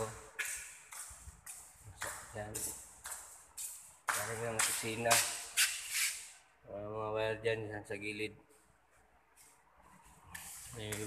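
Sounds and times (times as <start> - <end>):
man talking: 0.0 - 0.3, 2.0 - 2.8, 4.1 - 5.3, 6.7 - 8.4, 10.7 - 11.0.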